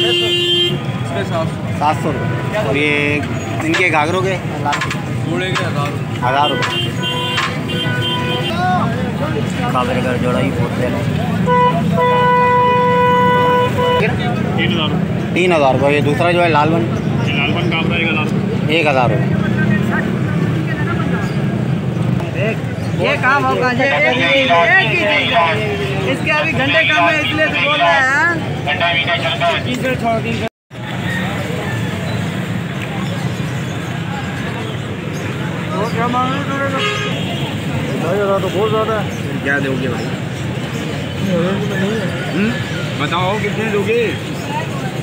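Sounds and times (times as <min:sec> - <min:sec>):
horn tooting: 0:00.0 - 0:03.2, 0:06.2 - 0:08.9, 0:11.2 - 0:14.4, 0:36.4 - 0:39.0
crowd chatter: 0:00.0 - 0:45.0
men talking and bargaining: 0:00.0 - 0:45.0
street traffic din: 0:00.0 - 0:45.0.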